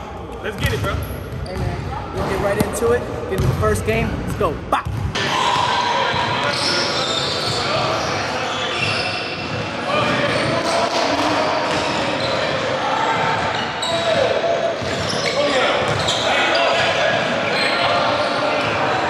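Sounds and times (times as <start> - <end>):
basketball bouncing on hardwood floor: 3.4 - 3.6.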